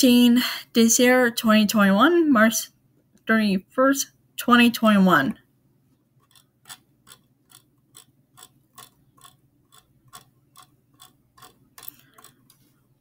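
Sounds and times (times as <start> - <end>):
mouse scroll wheel clicking: 6.2 - 12.8.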